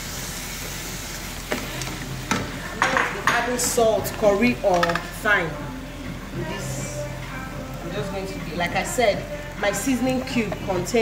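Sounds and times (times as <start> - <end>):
low steady sizzle: 0.0 - 11.0.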